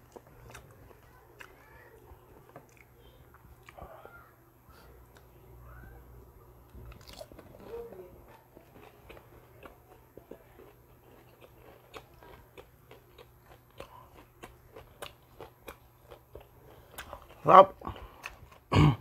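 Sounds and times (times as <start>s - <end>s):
crunchy chewing: 0.0s - 5.3s, 6.6s - 18.8s.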